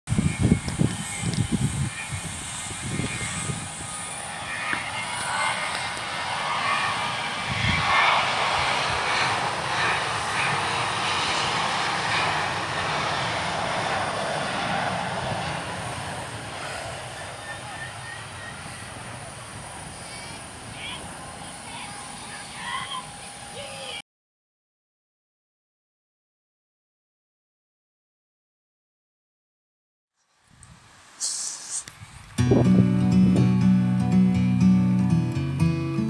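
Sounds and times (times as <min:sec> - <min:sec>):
wind buffeting microphone: 0:00.1 - 0:22.1, 0:31.9 - 0:33.6
jet engines running: 0:00.1 - 0:24.0.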